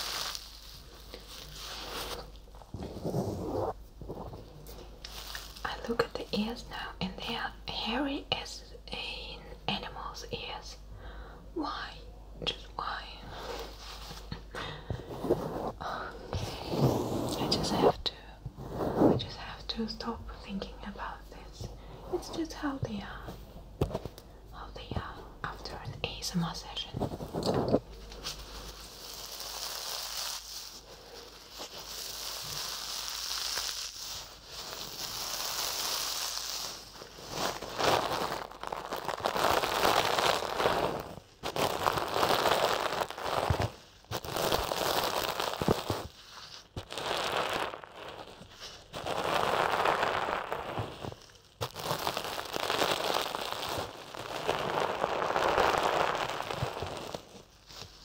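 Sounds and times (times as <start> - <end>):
fabric doll rustling on microphone: 0.0 - 6.5, 13.0 - 24.2, 24.8 - 58.0.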